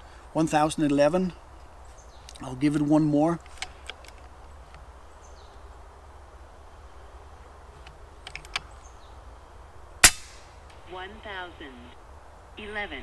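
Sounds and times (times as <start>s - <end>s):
air rifle shot: 10.0s - 10.6s.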